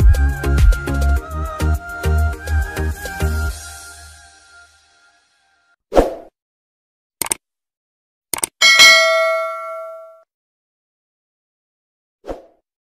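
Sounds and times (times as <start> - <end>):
mouse double click: 8.4 - 8.6
bell ding: 8.6 - 10.2.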